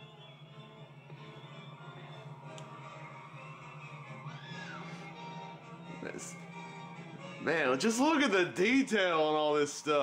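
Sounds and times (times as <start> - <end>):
orchestral film music from television: 0.0 - 10.0.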